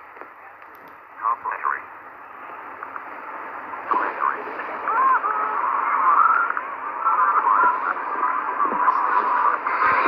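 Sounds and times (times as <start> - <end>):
muffled steady hiss: 0.0 - 10.0.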